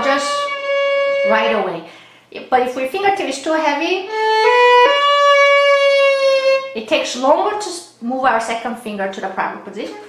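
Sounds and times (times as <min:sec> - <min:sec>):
violin bowed note: 0:00.0 - 0:01.9, 0:04.0 - 0:06.8.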